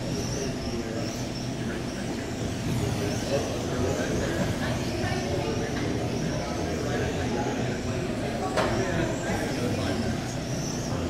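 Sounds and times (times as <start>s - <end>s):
high motor whine: 0.0s - 11.0s.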